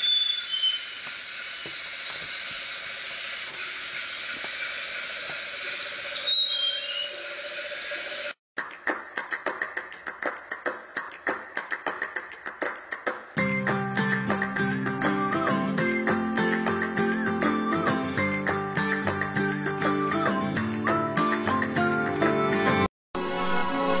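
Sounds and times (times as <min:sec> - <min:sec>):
short falling chirps: 0:00.0 - 0:02.5, 0:05.7 - 0:07.8
steady hiss: 0:00.0 - 0:08.4.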